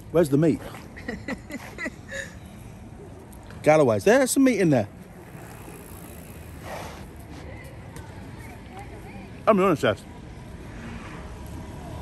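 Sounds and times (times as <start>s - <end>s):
outdoor street background noise: 0.0s - 12.0s.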